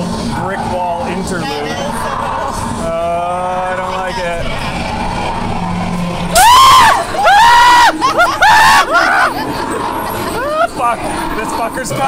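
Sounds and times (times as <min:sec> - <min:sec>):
ride car rumbling along track: 0:00.0 - 0:12.0
high-pitched shriek: 0:04.1 - 0:11.8.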